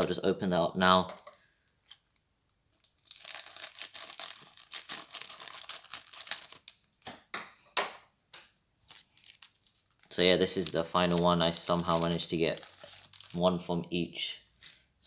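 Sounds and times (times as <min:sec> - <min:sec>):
plastic wrapper crinkling: 0:01.1 - 0:07.0, 0:08.8 - 0:13.6, 0:14.5 - 0:14.8.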